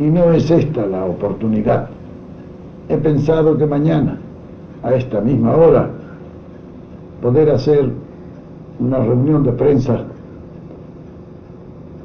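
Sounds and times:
recording hum and hiss: 0.0 - 12.0.

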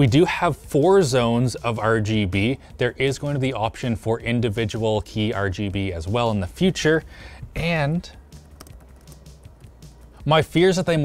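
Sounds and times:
soft laptop key clicks: 8.4 - 9.3.

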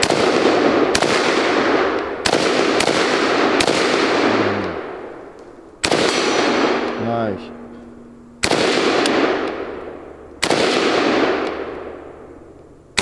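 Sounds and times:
rifle shots with echo: 0.0 - 7.5, 8.4 - 12.1.

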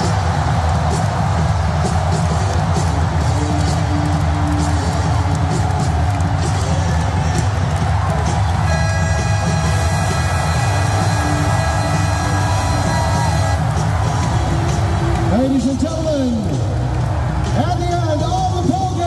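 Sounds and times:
crowd cheering: 0.0 - 19.0
loud arena music: 0.0 - 19.0.

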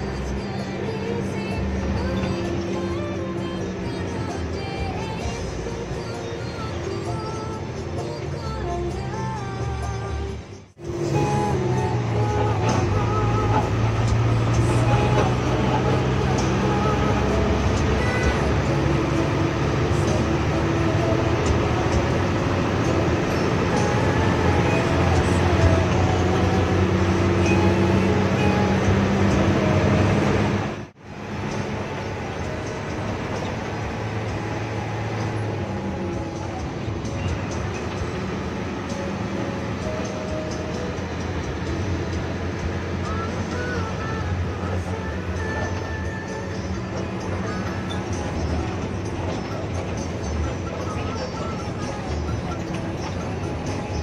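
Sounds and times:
music with singing over speakers: 0.0 - 29.9, 33.8 - 54.0
bus engine: 0.0 - 54.0
road noise: 0.0 - 54.0.

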